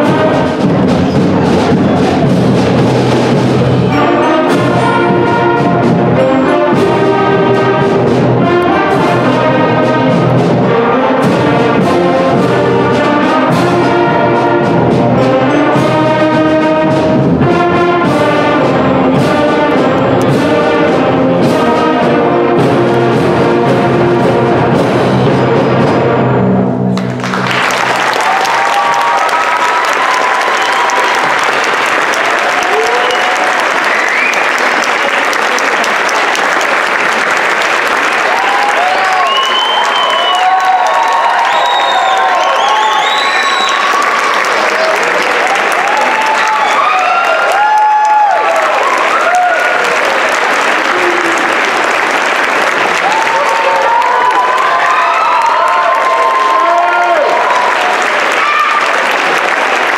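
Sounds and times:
large audience applauding: 26.9s - 59.9s
whoops and shouted cheers: 28.0s - 31.6s, 32.2s - 34.9s, 38.2s - 50.2s, 50.8s - 51.7s, 53.0s - 59.2s.

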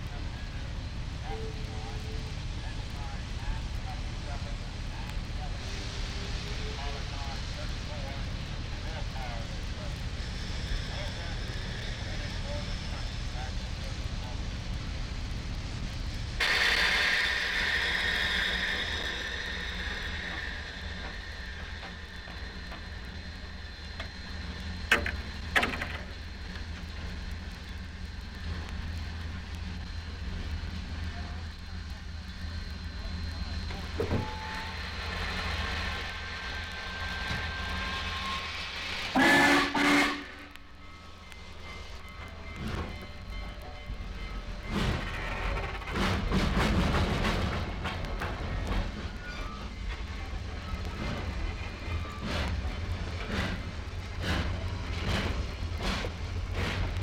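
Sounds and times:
train hissing: 0.0s - 57.0s
train horn blasts: 39.1s - 40.6s.

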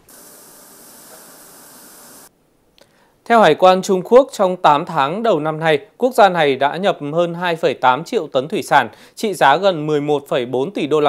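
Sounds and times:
machinery hissing: 0.0s - 2.3s.

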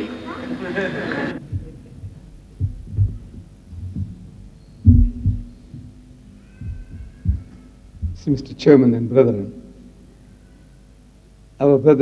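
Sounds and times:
short low hum: 1.4s - 8.6s
dull low thumps: 1.4s - 8.7s.

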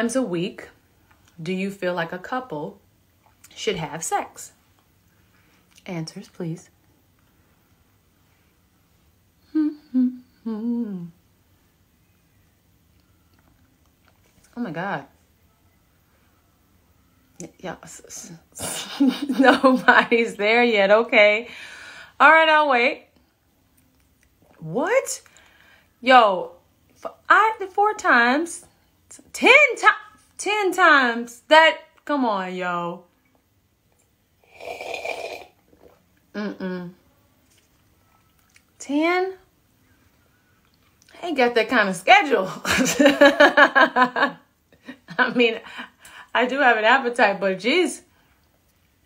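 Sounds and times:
woman humming: 9.4s - 11.2s, 36.4s - 37.0s
slurping sip from mug: 34.4s - 36.0s.

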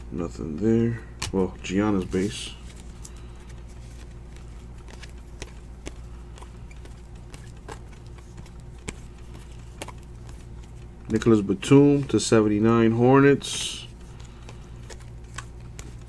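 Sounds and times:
steady low hum: 0.0s - 16.0s
trading cards flipped by hand: 1.2s - 12.6s, 13.3s - 16.0s.

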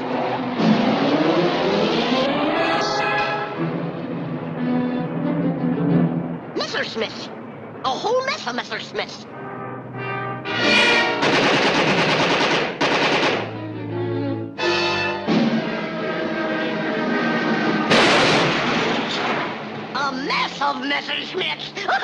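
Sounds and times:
orchestral music: 0.0s - 7.6s, 8.8s - 12.0s, 13.1s - 19.9s.

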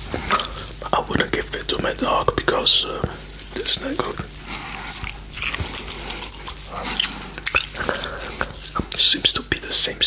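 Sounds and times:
chewing gummy candy: 0.0s - 10.0s.

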